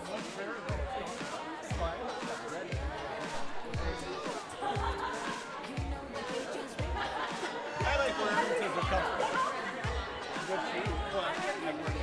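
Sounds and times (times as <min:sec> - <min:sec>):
crowd chatter: 0:00.0 - 0:12.0
low musical beat: 0:00.7 - 0:06.2.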